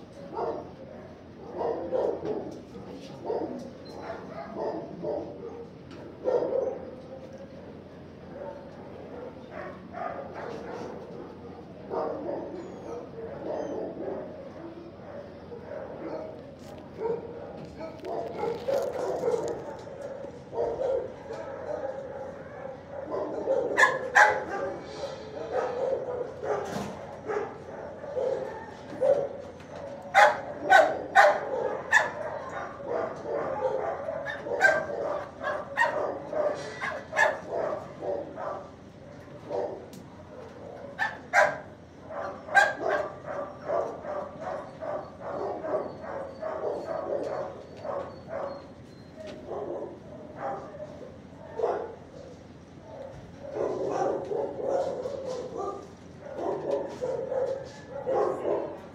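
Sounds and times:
dogs barking sharply: 0.3 - 7.0, 7.7 - 58.9
distant barking din: 0.3 - 58.9.

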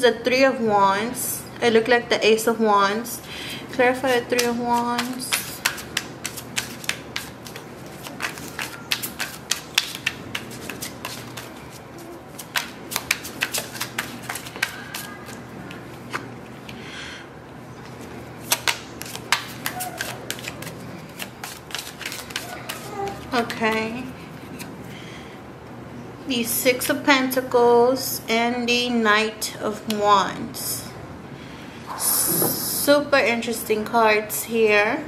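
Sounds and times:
cards being shuffled: 4.0 - 15.8, 18.4 - 24.7.

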